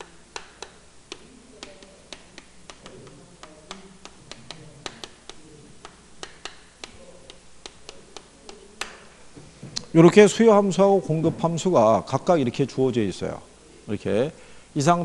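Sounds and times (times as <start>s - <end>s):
chalk tapping on chalkboard: 0.0s - 9.1s.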